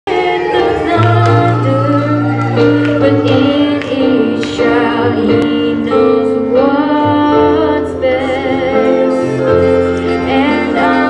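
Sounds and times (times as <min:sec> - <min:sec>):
woman singing into a microphone: 0:00.1 - 0:11.0.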